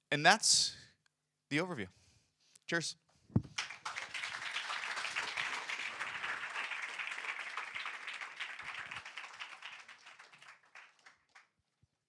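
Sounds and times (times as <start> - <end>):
audience applauding: 3.6 - 11.5.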